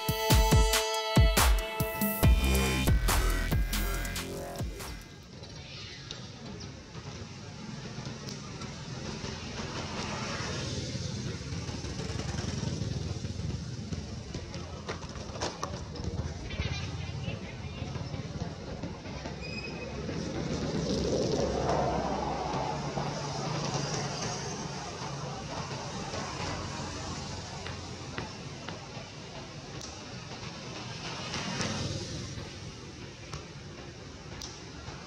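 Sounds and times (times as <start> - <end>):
engine humming: 2.0 - 5.1.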